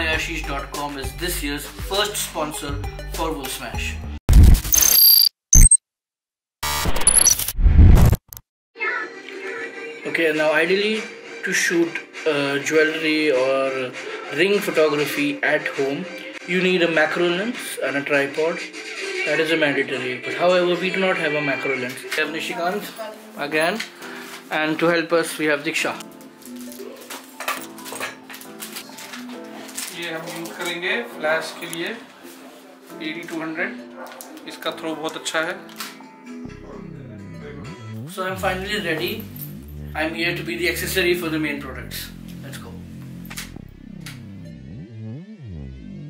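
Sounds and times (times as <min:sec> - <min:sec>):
background music: 0:00.0 - 0:04.2, 0:08.8 - 0:46.0
electronic glitch noise: 0:04.3 - 0:05.8, 0:06.6 - 0:08.4
short high beeps: 0:04.7 - 0:05.8.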